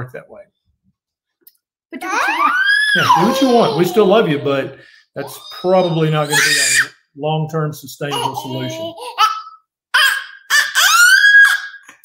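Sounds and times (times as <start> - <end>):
toddler squealing: 2.0 - 6.9, 8.1 - 11.9.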